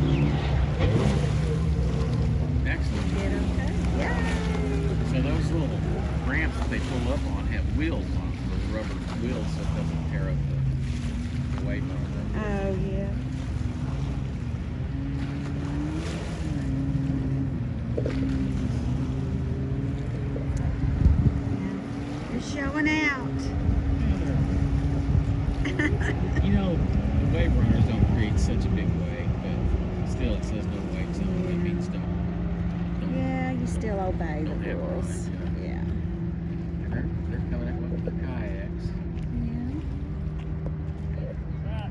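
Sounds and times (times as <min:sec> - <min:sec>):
voices: 0:00.0 - 0:14.5, 0:19.9 - 0:41.9
boat engines droning: 0:00.0 - 0:41.9.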